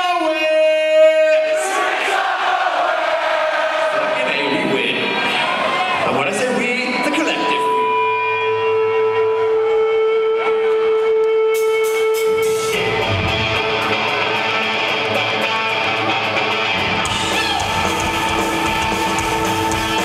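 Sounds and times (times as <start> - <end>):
rock band playing live: 7.4 - 20.0.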